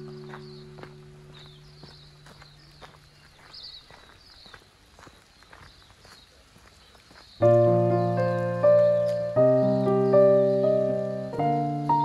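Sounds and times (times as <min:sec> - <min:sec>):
held music chord: 0:00.0 - 0:02.2, 0:07.4 - 0:12.0
footsteps on gravel: 0:00.0 - 0:09.8
small birds chirping: 0:00.0 - 0:12.0.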